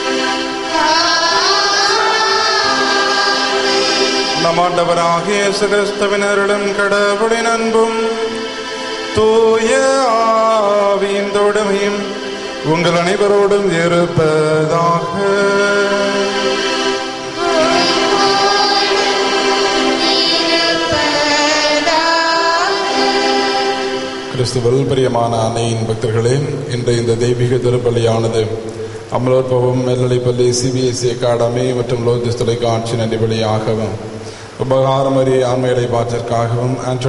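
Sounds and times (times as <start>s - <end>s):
choir singing long notes: 0.0s - 25.8s.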